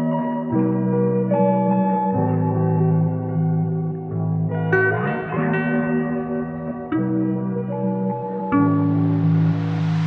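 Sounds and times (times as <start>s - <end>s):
slow instrumental music: 0.0s - 10.0s.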